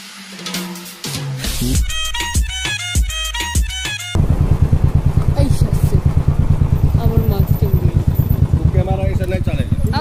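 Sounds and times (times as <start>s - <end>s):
motorcycle engine running: 4.2s - 10.0s.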